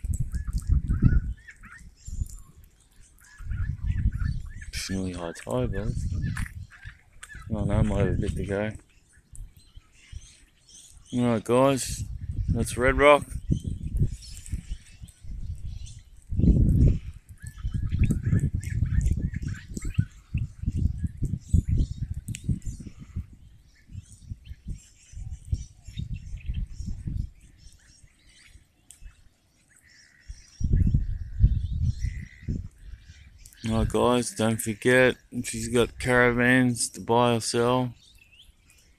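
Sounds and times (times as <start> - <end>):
birds chirping faintly: 0.0 - 38.9
wind buffeting microphone: 0.0 - 38.9.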